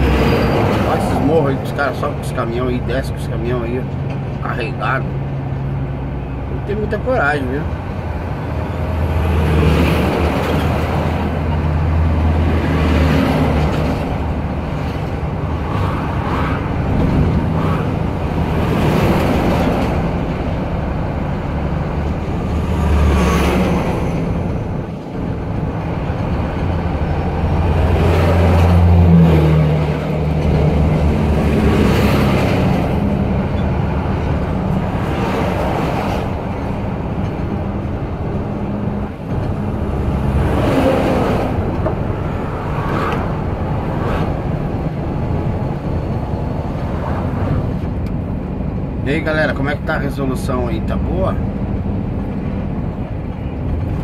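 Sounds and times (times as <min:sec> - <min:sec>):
passing trucks road noise: 0:00.0 - 0:54.0
truck diesel engine drone: 0:00.0 - 0:54.0.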